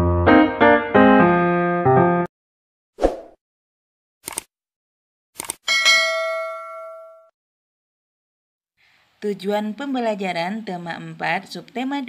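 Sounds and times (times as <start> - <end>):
quick clicks: 4.2 - 4.5, 5.4 - 5.6
bell-like ding: 5.7 - 7.3.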